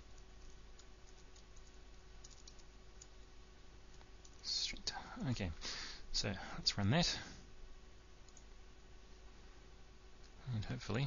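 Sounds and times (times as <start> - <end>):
person breathing: 4.9 - 7.5.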